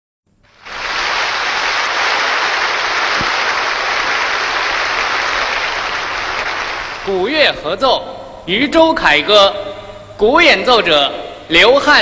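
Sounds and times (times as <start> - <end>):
large audience applauding: 0.5 - 7.2.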